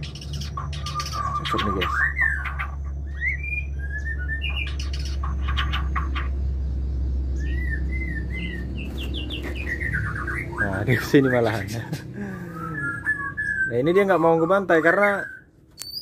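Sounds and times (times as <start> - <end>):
steady low hum: 0.0 - 15.7
birds whistling chirps: 0.0 - 16.0.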